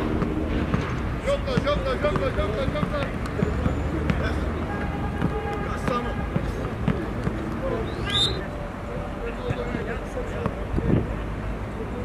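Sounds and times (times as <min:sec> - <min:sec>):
players calling out: 0:01.2 - 0:10.5
football thuds on head and foot: 0:05.2 - 0:07.4.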